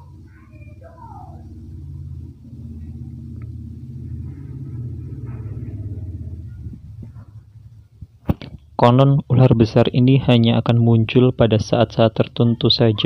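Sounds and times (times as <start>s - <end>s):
faint voices: 0.0s - 3.2s
low outdoor rumble: 0.0s - 13.0s.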